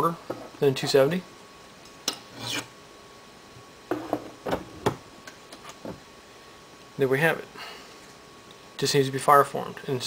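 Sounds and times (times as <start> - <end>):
file scraping metal: 2.4 - 2.7.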